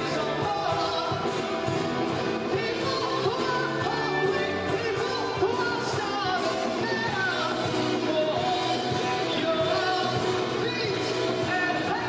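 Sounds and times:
live band playing: 0:00.0 - 0:12.0
man singing: 0:00.0 - 0:12.0.

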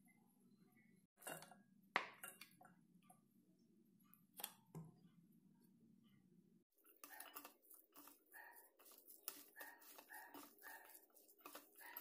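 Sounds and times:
hand squeezing batter: 0:06.8 - 0:12.0.

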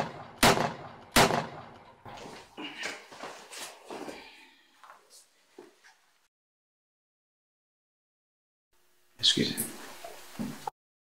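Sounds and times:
gunshot: 0:00.0 - 0:01.8.

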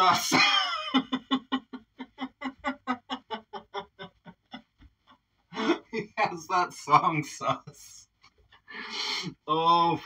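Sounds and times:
man laughing hard: 0:00.0 - 0:06.2.

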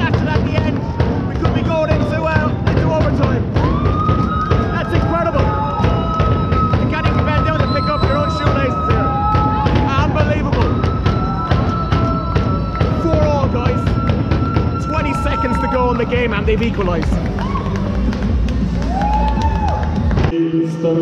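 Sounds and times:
fast percussive music beats: 0:00.0 - 0:20.3
arena crowd noise: 0:00.0 - 0:21.0.

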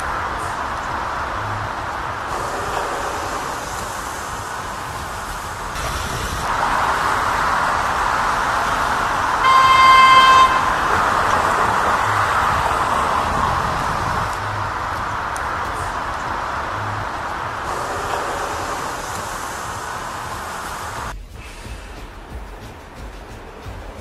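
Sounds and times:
street traffic: 0:00.0 - 0:24.0
vehicle horn: 0:05.8 - 0:19.8.

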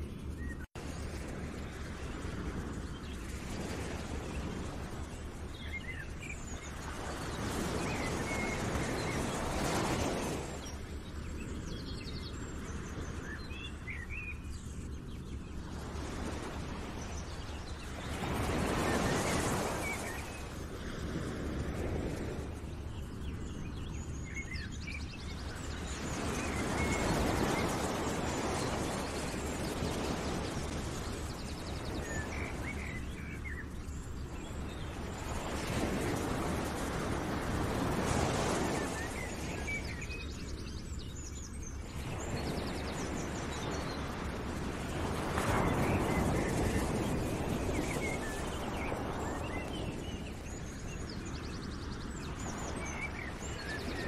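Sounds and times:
wash of nature noise: 0:00.0 - 0:54.0.

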